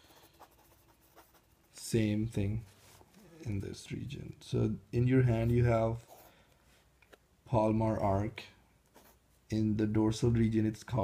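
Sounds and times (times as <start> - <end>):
pen scratching on paper: 0.0 - 1.8, 8.9 - 9.2.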